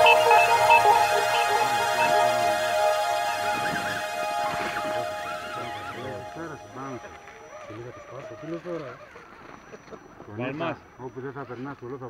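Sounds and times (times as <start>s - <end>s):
background music: 0.0s - 7.5s
people talking: 0.0s - 9.0s.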